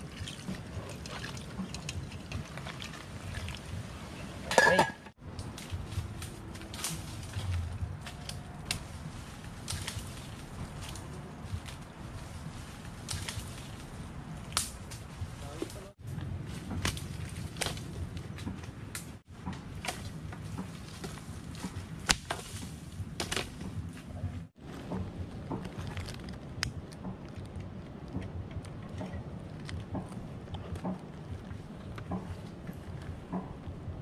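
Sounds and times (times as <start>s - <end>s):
low outdoor rumble: 0.0s - 34.0s
dry branches snapping: 5.2s - 33.6s
twigs clattering onto a pile: 5.4s - 11.8s, 13.0s - 13.9s, 16.5s - 24.1s.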